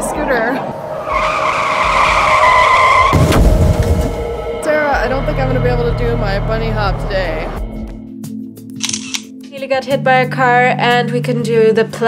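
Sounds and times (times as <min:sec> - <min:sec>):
tyre screech skid: 0:00.0 - 0:04.1.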